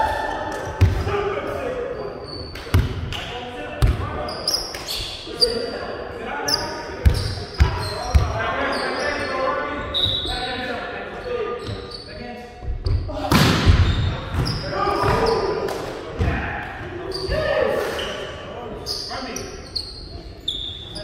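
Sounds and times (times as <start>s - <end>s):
players' voices echoing: 0.0s - 21.0s
volleyball thumping on gym floor: 2.7s - 3.1s
sneakers squeaking on court: 6.5s - 10.5s, 11.5s - 12.2s, 13.7s - 15.6s.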